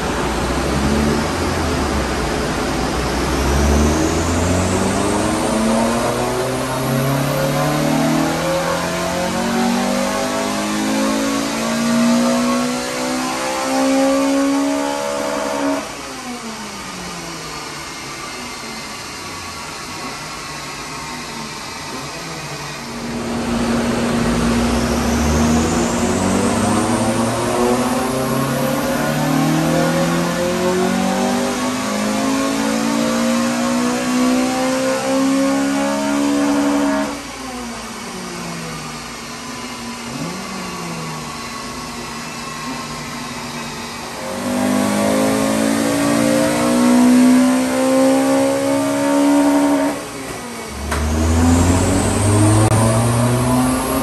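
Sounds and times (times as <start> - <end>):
car engine revving: 0.0 - 16.9, 17.6 - 54.0.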